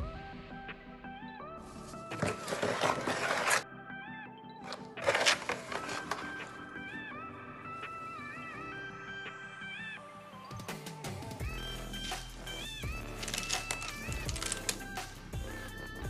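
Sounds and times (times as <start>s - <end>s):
lilting background music: 0.0s - 16.0s
spoon scraping wet concrete: 1.9s - 3.6s.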